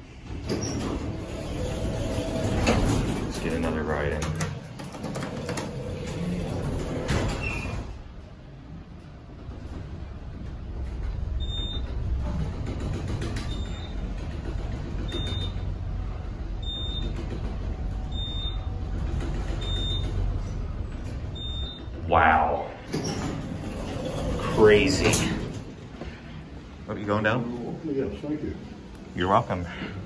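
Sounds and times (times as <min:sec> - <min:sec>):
elevator doors sliding shut: 0:00.0 - 0:26.2
elevator hum: 0:00.0 - 0:30.0.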